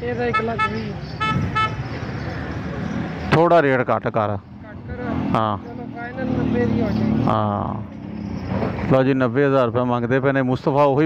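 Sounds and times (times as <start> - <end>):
low rumble of road traffic: 0.0 - 11.0
vehicle horn toots: 0.2 - 1.9.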